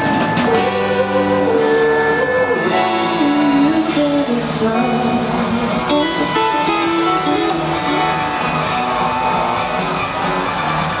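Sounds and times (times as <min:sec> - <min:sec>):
drums: 0:00.0 - 0:11.0
guitar: 0:00.0 - 0:11.0.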